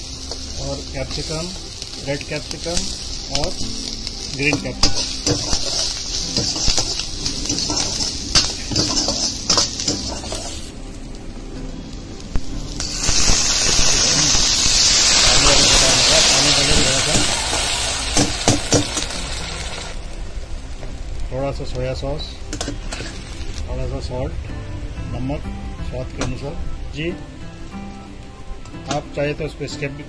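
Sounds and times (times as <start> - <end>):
liquid hissing in hot wok: 0.0 - 10.8, 12.3 - 20.2
vegetables sizzling in wok: 0.0 - 24.2
ladle scraping and knocking pan: 4.5 - 10.6.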